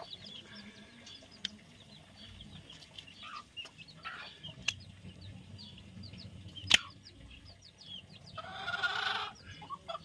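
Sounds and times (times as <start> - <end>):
chicken calling: 8.3 - 10.0.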